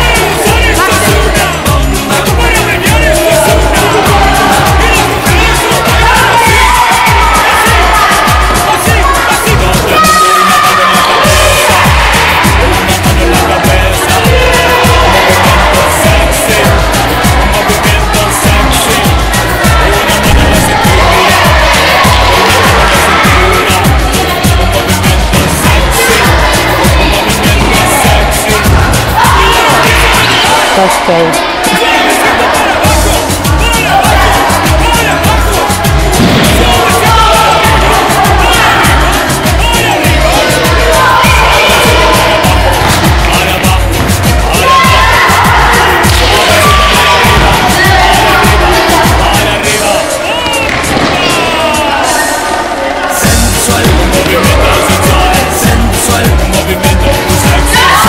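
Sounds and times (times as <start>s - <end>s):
music with bass beat and melody: 0.0s - 52.2s, 53.2s - 58.0s.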